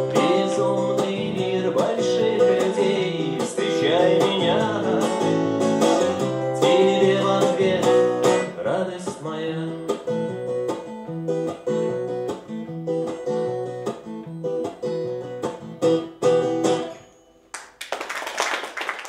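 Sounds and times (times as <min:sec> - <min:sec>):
acoustic guitar picking: 0:00.0 - 0:17.4
audience applause: 0:17.6 - 0:19.0.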